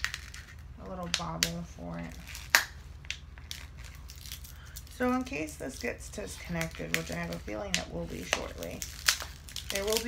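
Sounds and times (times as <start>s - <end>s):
low steady hum: 0.0s - 10.0s
plastic packaging crinkling: 0.0s - 10.0s.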